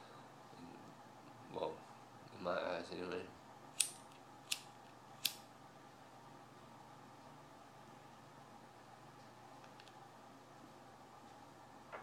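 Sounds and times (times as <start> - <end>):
lighter clicking: 3.8 - 5.4.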